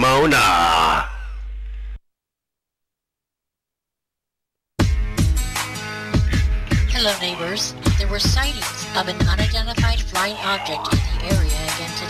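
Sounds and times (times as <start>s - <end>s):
announcer's voice: 0.0s - 1.3s, 6.9s - 12.0s.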